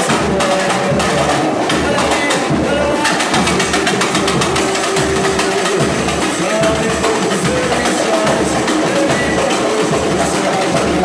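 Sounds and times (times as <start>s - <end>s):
loud dance music with drum beat: 0.0s - 11.0s.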